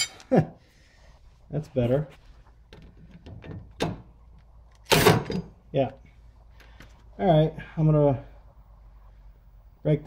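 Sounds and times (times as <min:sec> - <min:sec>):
metal tools clunking and clattering: 0:00.0 - 0:00.3.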